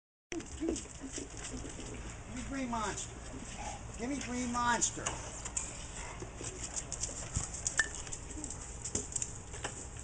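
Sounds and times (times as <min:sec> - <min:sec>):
light footsteps: 0:00.6 - 0:10.0.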